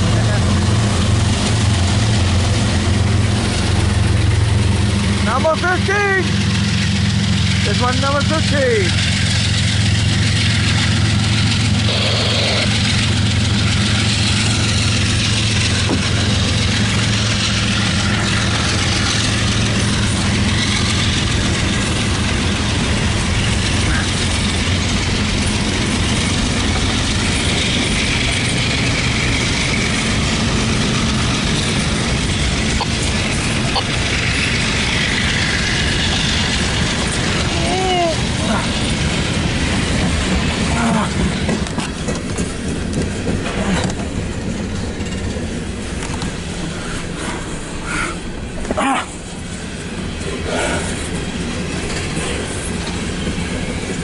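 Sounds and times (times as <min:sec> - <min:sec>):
diesel locomotive drone: 0:00.0 - 0:54.0
train wheels rumbling on rails: 0:00.0 - 0:54.0
train wheel squeals: 0:06.2 - 0:38.9, 0:50.9 - 0:54.0.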